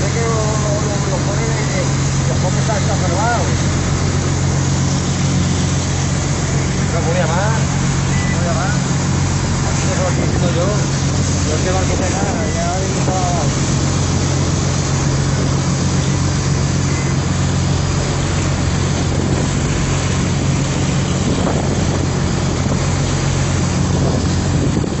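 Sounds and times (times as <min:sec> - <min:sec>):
boat engine droning: 0:00.0 - 0:25.0
water rushing along hull: 0:00.0 - 0:25.0
wind buffeting microphone: 0:00.0 - 0:25.0.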